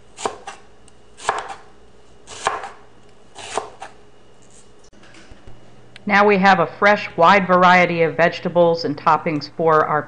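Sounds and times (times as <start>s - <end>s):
knife slicing onion: 0.0s - 4.7s.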